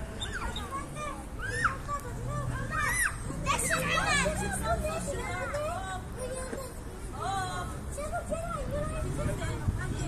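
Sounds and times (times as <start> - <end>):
children shrieking and calling out: 0.0 - 6.8.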